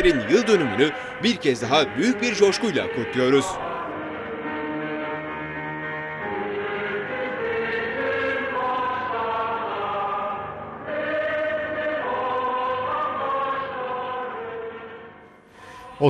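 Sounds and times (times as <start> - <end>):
choir singing slow melody: 0.0 - 16.0.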